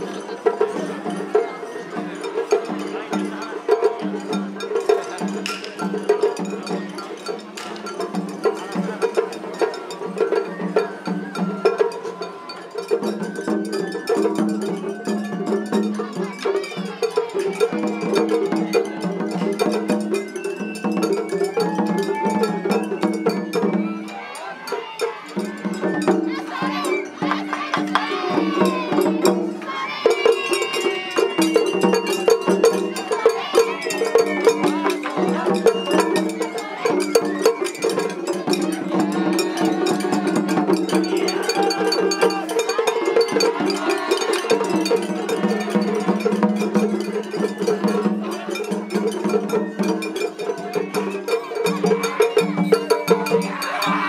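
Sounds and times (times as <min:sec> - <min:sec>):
crowd voices: 0:00.0 - 0:54.0
taiko drums: 0:00.0 - 0:54.0
bamboo flutes: 0:09.5 - 0:43.1.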